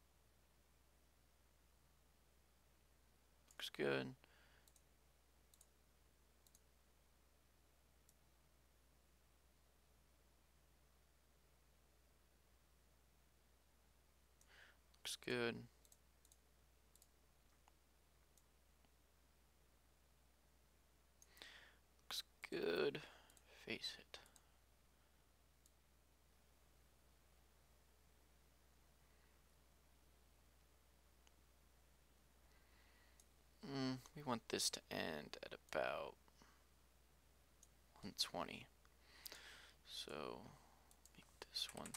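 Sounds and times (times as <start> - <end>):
low steady hum: 0.0 - 41.9
computer mouse click: 4.6 - 4.9, 5.5 - 5.7, 6.4 - 6.7, 15.8 - 18.5, 40.9 - 41.9.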